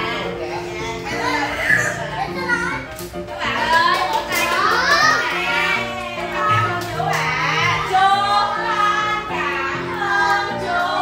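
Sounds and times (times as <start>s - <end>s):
young children chattering: 0.0s - 6.6s
music playing: 0.0s - 11.0s.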